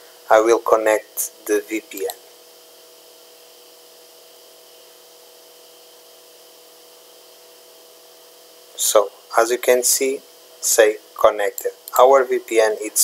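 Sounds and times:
steady low hiss: 0.0 - 2.3, 8.7 - 13.0
faint even hum: 0.0 - 13.0.

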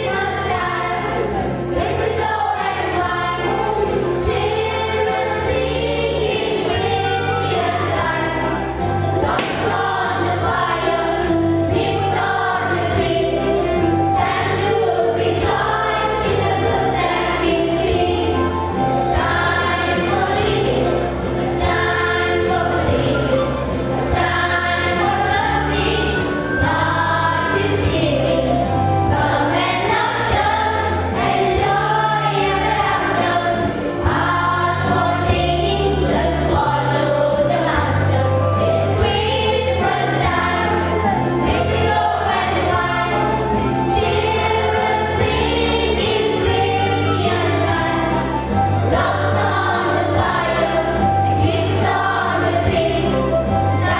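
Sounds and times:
children's choir singing: 0.0 - 53.9.

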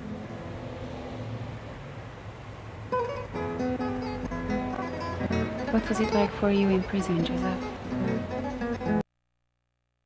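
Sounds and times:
acoustic guitar music: 2.9 - 9.0
plucked guitar note: 3.0 - 9.0.

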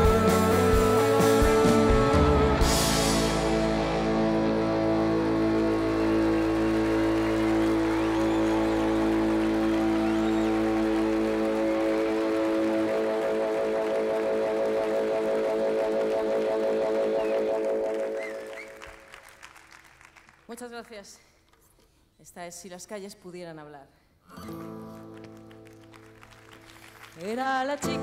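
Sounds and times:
rock band chord ringing: 0.0 - 14.7
audience applause: 3.9 - 20.5, 25.1 - 28.0.

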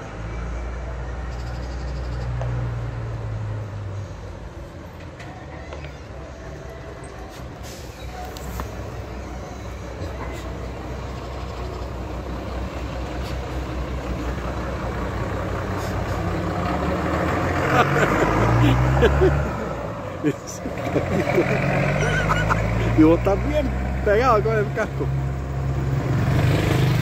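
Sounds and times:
bus engine driving past: 0.0 - 27.0
another engine: 8.2 - 27.0.

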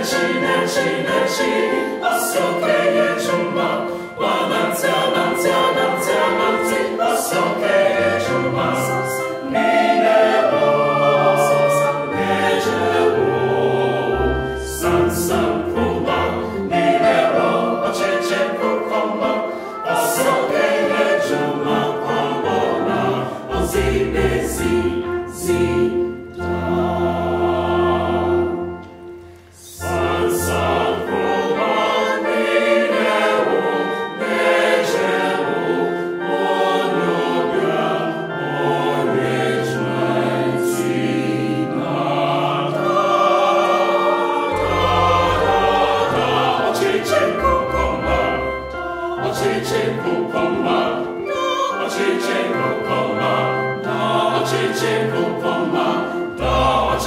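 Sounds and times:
mixed choir singing: 0.0 - 57.0.

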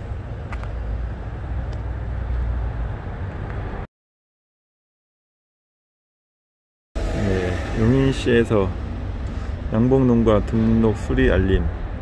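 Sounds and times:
steady low street rumble: 0.0 - 3.9, 7.0 - 12.0.

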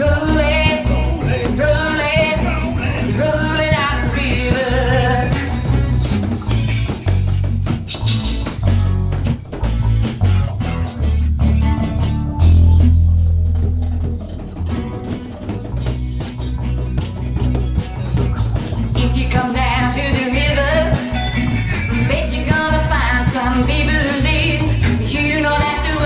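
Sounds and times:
bongos: 0.0 - 26.0
electric bass: 0.0 - 26.0
electric guitar: 0.0 - 26.0.

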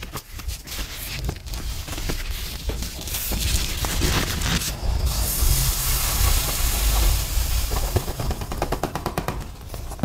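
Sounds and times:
sand pouring off paper: 0.8 - 8.5.

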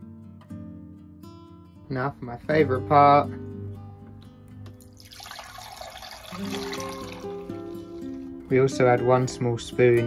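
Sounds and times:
acoustic guitar music: 0.0 - 10.0
juice pouring into a jug: 4.8 - 8.3.

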